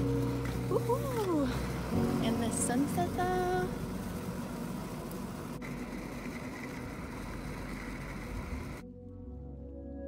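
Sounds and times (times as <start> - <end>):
wheels rolling on pavement: 0.0 - 8.8.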